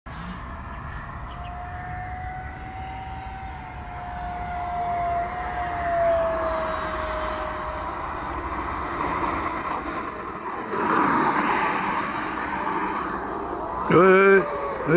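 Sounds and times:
jet engine whine: 0:00.1 - 0:14.9
wheels scrubbing on asphalt: 0:05.3 - 0:14.9.

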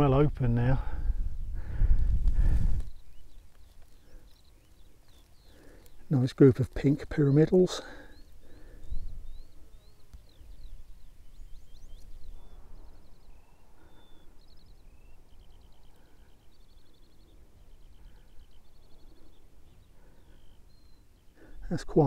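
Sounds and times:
songbird singing: 0:00.0 - 0:22.0.

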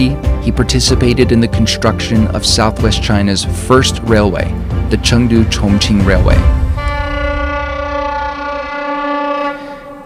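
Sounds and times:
train horn long blast: 0:06.7 - 0:10.0.

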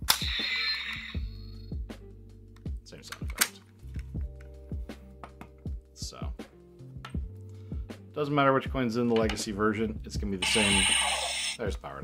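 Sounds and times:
toy metallic clash effect: 0:00.0 - 0:01.4, 0:10.4 - 0:11.6
background music with beat: 0:00.0 - 0:10.9.

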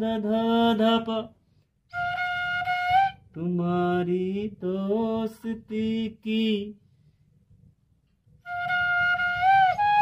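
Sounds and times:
man singing held notes: 0:03.3 - 0:06.8
bamboo flute note: 0:08.4 - 0:10.0.

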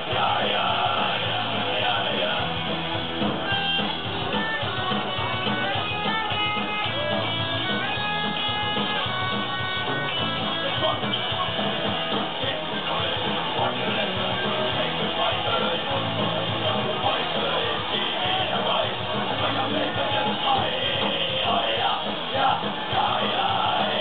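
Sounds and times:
punk rock band playing: 0:00.0 - 0:24.0
picked guitar melody: 0:02.4 - 0:21.4.

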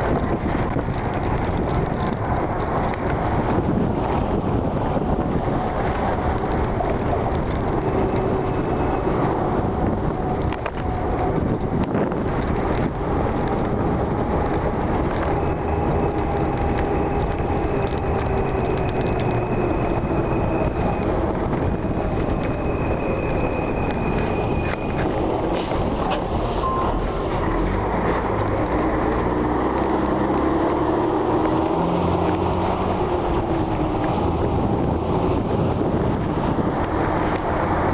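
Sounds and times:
bus engine drone: 0:00.0 - 0:37.9
road rumble: 0:00.0 - 0:37.9.

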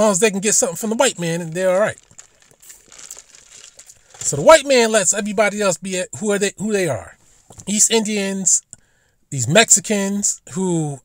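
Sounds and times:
faint rustling and crackling: 0:00.4 - 0:04.8.

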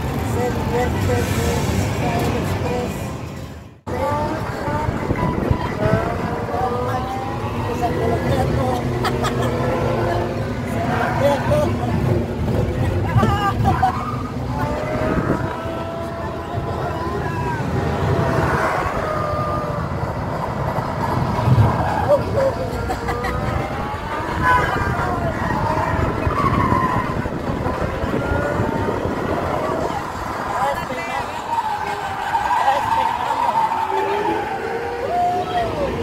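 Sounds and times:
riders' voices and laughter: 0:04.0 - 0:36.0.

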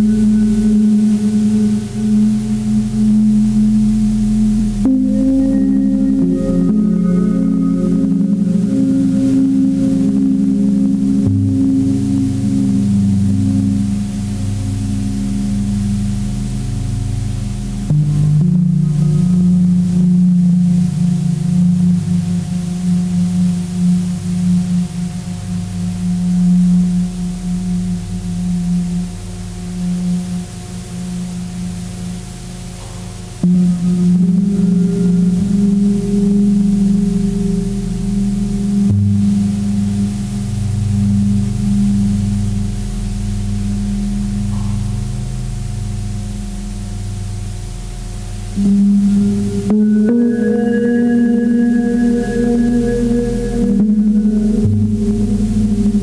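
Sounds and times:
low gong-like droning tones: 0:00.0 - 0:56.0.

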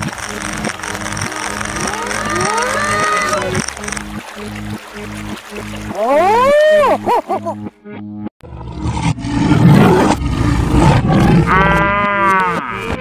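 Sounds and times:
background music: 0:00.0 - 0:08.3
cartoon animal calls: 0:01.8 - 0:03.6
loud noisy roar: 0:08.4 - 0:13.0.

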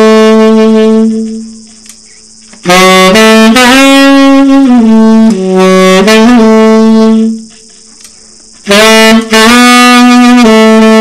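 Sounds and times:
saxophone long low note: 0:00.0 - 0:01.5, 0:02.6 - 0:07.5, 0:08.6 - 0:11.0.

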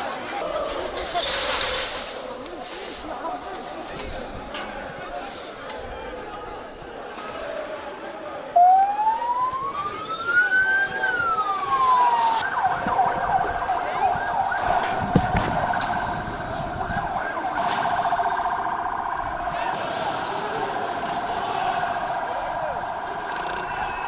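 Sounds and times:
crowd noise: 0:00.0 - 0:24.0
police siren wailing and yelping: 0:08.6 - 0:24.0.

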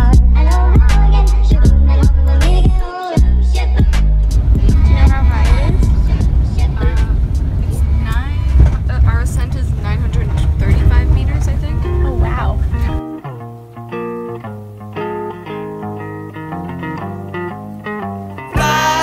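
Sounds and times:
plucked guitar over bass line: 0:00.0 - 0:19.0
vehicle cabin rumble: 0:04.4 - 0:13.0
voices: 0:04.4 - 0:13.0.

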